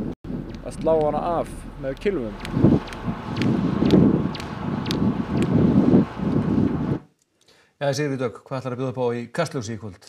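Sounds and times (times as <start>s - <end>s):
wind rumble on microphone: 0.0s - 7.0s.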